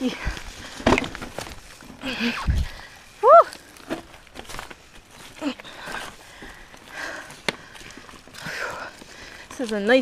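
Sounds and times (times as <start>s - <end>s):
bike tyre and trail noise: 0.0s - 10.0s.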